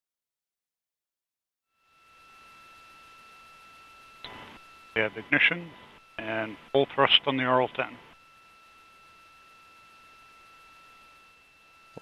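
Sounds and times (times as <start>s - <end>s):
thin steady line tones: 1.7s - 12.0s
faint steady hiss: 2.2s - 12.0s.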